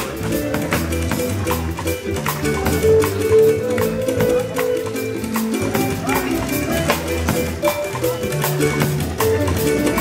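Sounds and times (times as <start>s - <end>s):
drum kit beat: 0.0s - 10.0s
electric bass: 0.0s - 10.0s
electric guitar: 0.0s - 10.0s.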